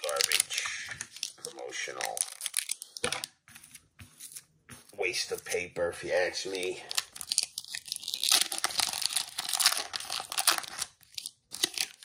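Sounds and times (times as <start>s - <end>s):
foil wrapper tearing and crinkling: 0.0s - 3.2s, 6.8s - 12.0s.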